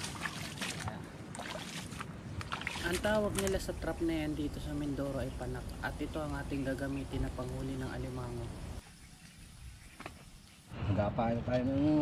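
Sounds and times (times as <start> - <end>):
footsteps wading through water: 0.0 - 3.7
splashes and squelches: 0.0 - 3.9.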